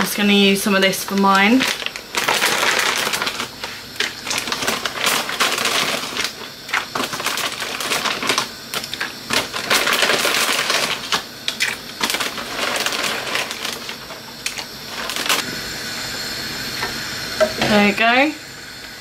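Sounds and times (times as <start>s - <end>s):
plastic bag crinkling: 0.7s - 15.4s
dry pasta rattling in bag: 1.0s - 15.4s.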